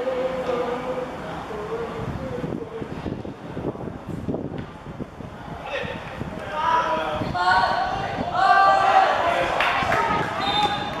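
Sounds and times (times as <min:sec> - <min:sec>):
voices shouting: 0:06.5 - 0:11.0.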